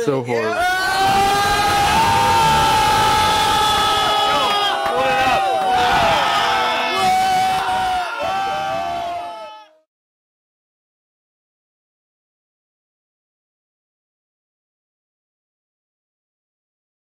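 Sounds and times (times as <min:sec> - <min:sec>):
people yelling and cheering: 0:00.2 - 0:09.9.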